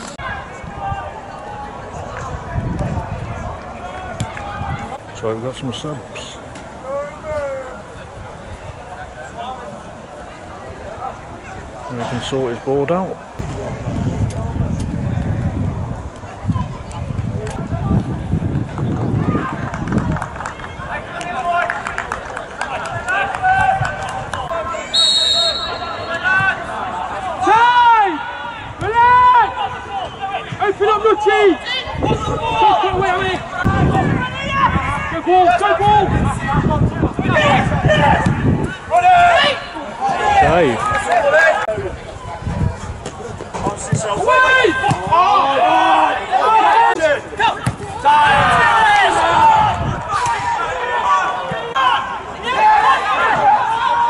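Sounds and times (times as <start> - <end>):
players shouting: 20.6 - 42.2, 43.8 - 54.0
referee's whistle blast: 24.9 - 26.3.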